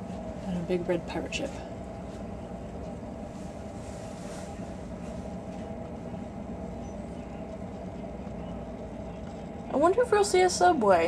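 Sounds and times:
ship machinery drone: 0.0s - 11.0s.

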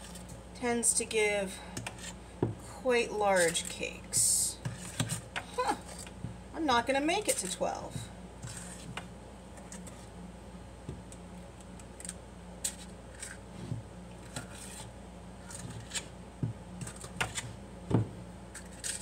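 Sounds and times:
metal scoop scraping steel bowl: 3.2s - 5.0s.

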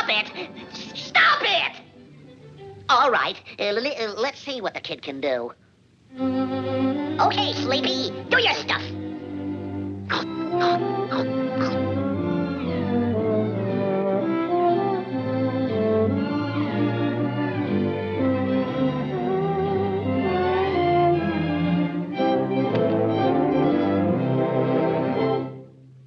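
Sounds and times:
orchestral cartoon music with strings: 0.0s - 3.2s, 6.1s - 25.7s.

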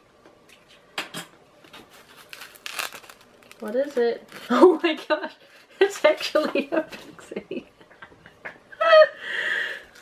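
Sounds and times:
scraping and crinkling: 1.7s - 6.6s
knife cutting polystyrene: 1.8s - 4.9s.

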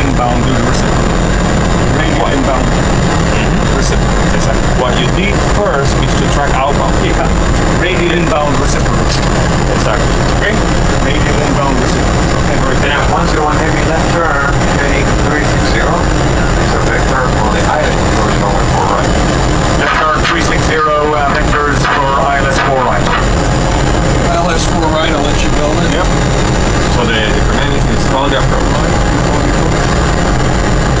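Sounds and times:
aircraft cockpit low rumble: 0.0s - 31.0s
faint high whine: 0.0s - 31.0s.

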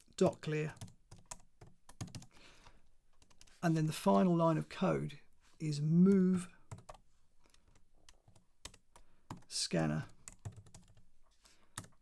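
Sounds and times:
faint keyboard typing: 0.0s - 3.6s, 6.1s - 12.0s.

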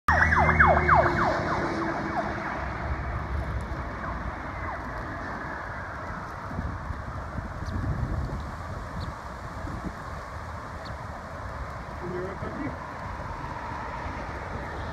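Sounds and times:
emergency vehicle siren: 0.1s - 7.5s
traffic rumble: 0.1s - 14.9s.

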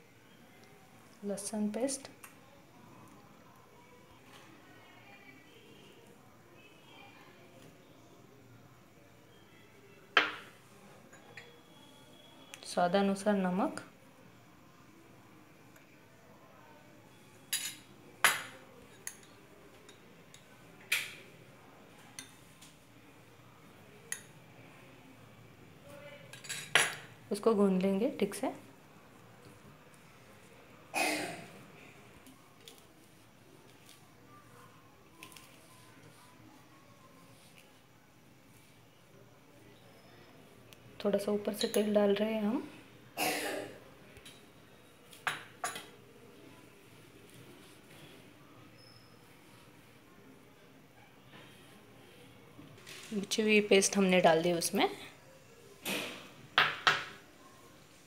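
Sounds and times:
faint mixing sounds: 0.0s - 58.0s
spoon clinking against steel bowl: 11.1s - 11.6s, 17.5s - 20.5s.

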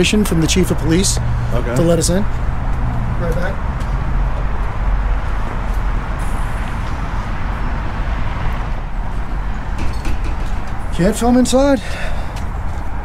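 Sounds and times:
street traffic rumble: 0.0s - 13.0s.

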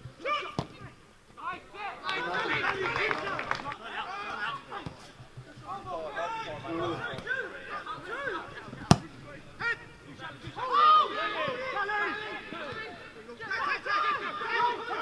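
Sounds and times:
players shouting: 0.2s - 15.0s.

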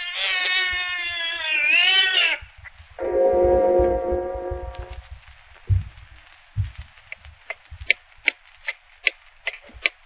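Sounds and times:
cat yowling: 0.0s - 2.5s.

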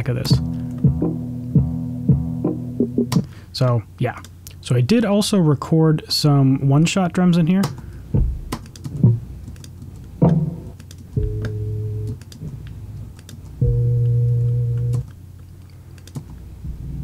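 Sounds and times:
deep low notes: 0.2s - 3.1s, 11.2s - 12.0s, 13.6s - 15.0s
low drum thump: 0.3s - 3.1s, 8.2s - 9.2s
pitched drum hit: 0.3s - 3.2s.

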